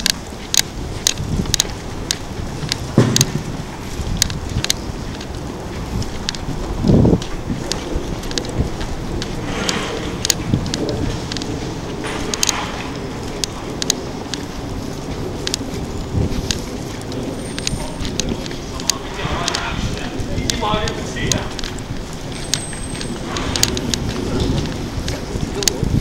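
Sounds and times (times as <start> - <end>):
low thumps: 0.0 - 17.3
footsteps on pavement: 0.0 - 26.0
wind noise on microphone: 0.0 - 26.0.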